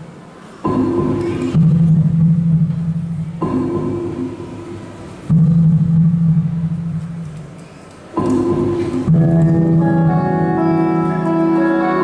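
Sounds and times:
live band low notes: 8.2 - 12.0.

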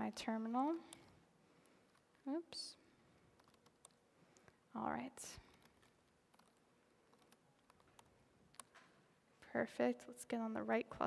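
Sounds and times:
faint keyboard keystrokes: 3.2 - 4.6, 5.4 - 8.9.

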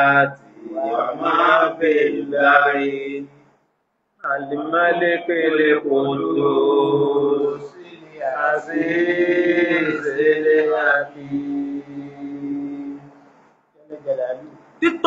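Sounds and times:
man chanting: 0.0 - 3.1, 4.2 - 13.1.

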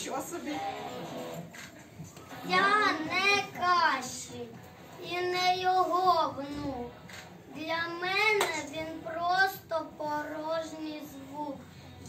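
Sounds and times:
child reciting in sing-song voice: 7.5 - 11.6.

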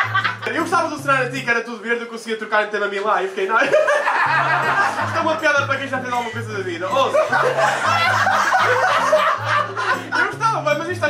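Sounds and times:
low background music: 0.0 - 11.0
audience laughing: 3.5 - 5.2, 6.9 - 10.3.

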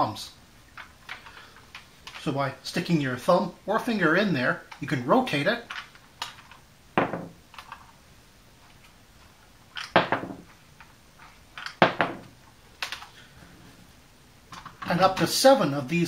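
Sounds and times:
plastic toys clattering on table: 9.7 - 13.2.

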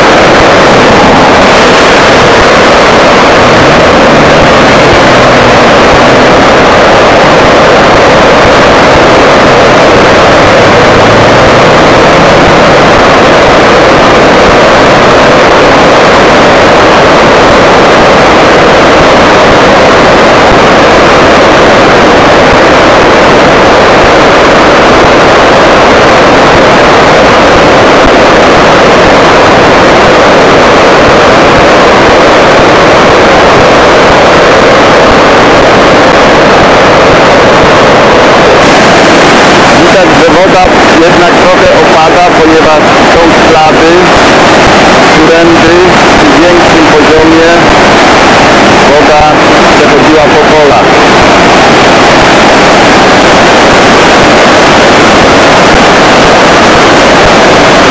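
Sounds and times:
flooded river rushing: 0.0 - 57.9.

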